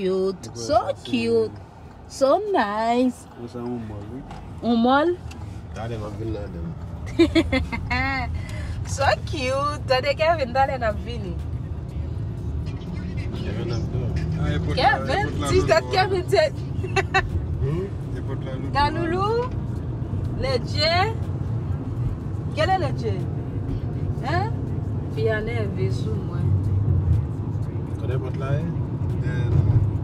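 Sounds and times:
car road and engine rumble: 0.0 - 30.0.

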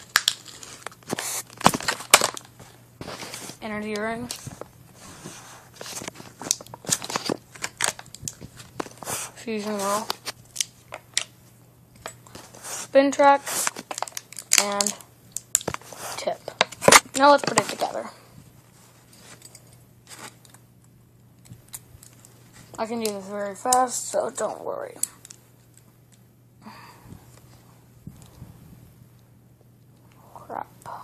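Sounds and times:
faint low hum: 0.0 - 31.0.

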